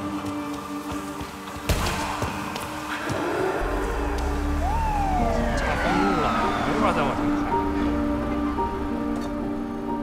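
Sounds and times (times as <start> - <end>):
film score with held tones: 0.0 - 10.0
police siren wailing: 3.6 - 8.5.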